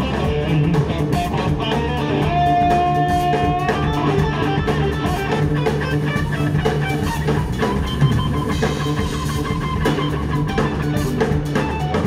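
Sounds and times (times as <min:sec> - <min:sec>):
drum kit: 0:00.0 - 0:12.0
electric bass: 0:00.0 - 0:12.0
electric guitar: 0:00.0 - 0:12.0.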